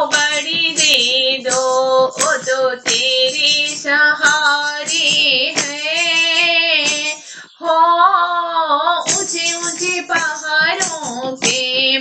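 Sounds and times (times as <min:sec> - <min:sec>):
high voice singing devotional song: 0:00.0 - 0:12.0.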